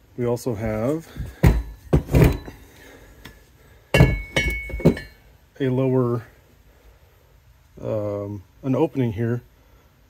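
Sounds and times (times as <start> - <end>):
metal part knocking on wooden bench: 1.4 - 2.6, 4.0 - 5.2.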